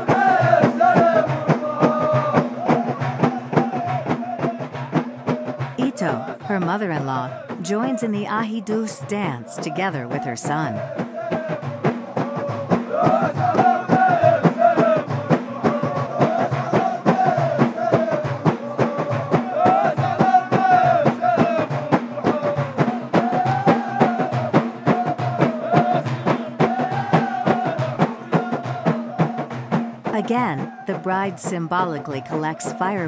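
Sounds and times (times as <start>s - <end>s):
men chanting in unison: 0.0s - 8.0s, 9.3s - 29.7s, 30.6s - 31.3s
frame drums beating: 0.0s - 33.0s.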